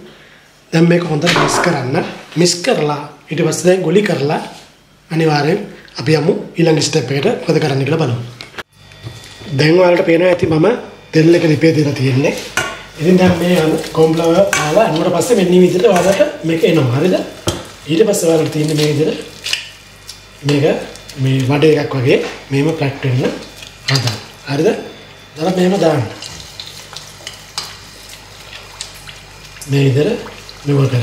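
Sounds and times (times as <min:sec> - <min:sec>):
man speaking: 0:00.8 - 0:04.4
batter sizzling in hot oil: 0:11.4 - 0:31.0
oil crackling: 0:25.1 - 0:30.8.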